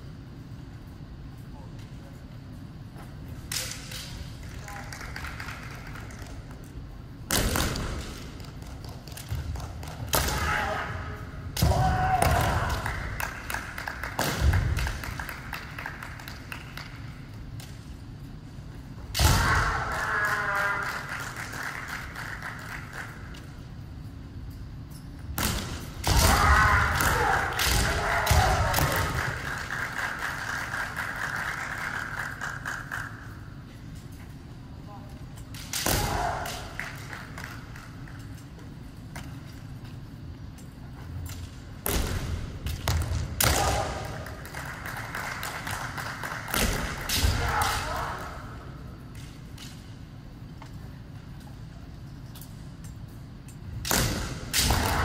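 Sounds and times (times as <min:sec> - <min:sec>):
people shouting kiai: 0:10.1 - 0:12.9, 0:19.2 - 0:20.9, 0:26.0 - 0:29.4, 0:35.8 - 0:36.8, 0:43.4 - 0:44.2, 0:47.1 - 0:48.7, 0:54.6 - 0:55.0
bamboo swords striking: 0:35.6 - 0:36.6, 0:53.8 - 0:55.0.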